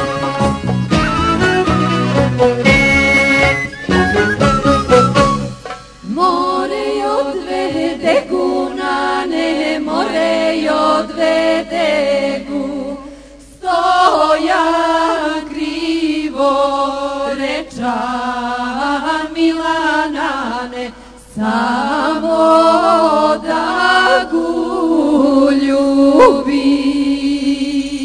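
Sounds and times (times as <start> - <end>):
unaccompanied chant-like singing: 6.1 - 28.0.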